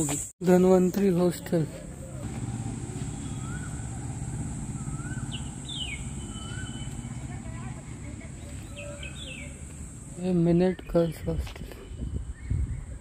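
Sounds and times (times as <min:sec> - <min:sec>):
bird calling: 0:01.7 - 0:11.2
bird chirps: 0:01.9 - 0:13.0
low rumble: 0:02.1 - 0:10.2.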